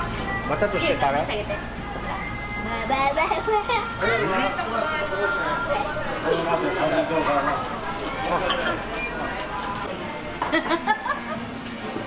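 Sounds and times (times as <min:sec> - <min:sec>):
child and adults chattering: 0:00.5 - 0:10.6.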